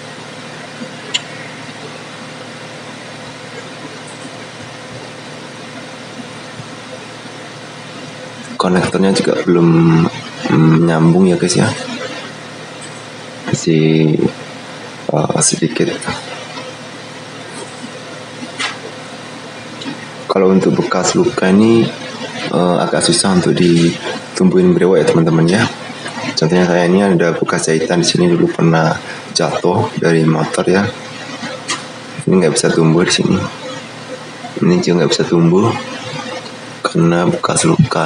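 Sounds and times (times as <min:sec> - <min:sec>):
faint constant hum: 0:00.0 - 0:38.0.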